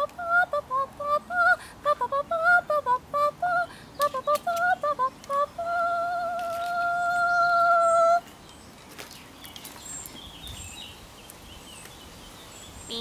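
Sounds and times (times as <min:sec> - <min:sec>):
faint bird chirps: 0:05.2 - 0:13.0.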